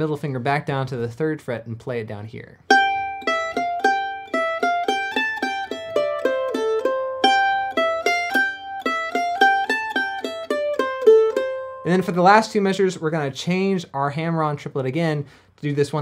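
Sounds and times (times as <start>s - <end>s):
mandolin picking single notes: 2.5s - 13.4s.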